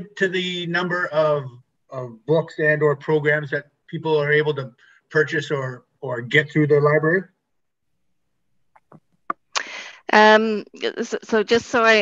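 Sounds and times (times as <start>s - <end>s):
woman speaking: 9.3s - 12.0s.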